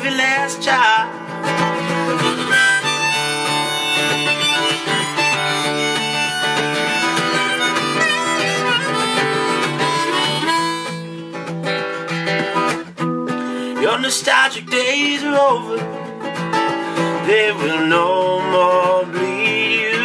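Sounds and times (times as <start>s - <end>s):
acoustic guitar: 0.0s - 20.0s
harmonica playing: 1.7s - 12.8s.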